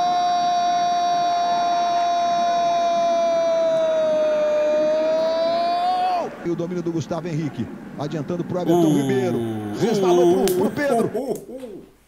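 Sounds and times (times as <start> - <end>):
commentator shouting long goal cry: 8.7 - 11.0.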